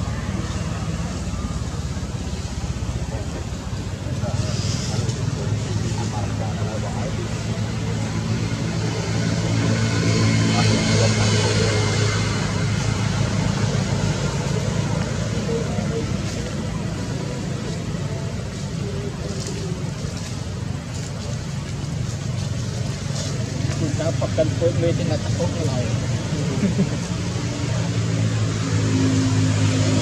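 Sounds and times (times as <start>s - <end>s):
motor engine running: 0.0s - 30.0s.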